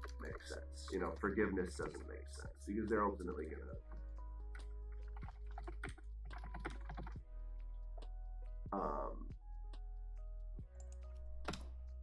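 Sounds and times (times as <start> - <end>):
soft background music: 0.0 - 12.0
typing on computer keyboard: 4.5 - 7.2.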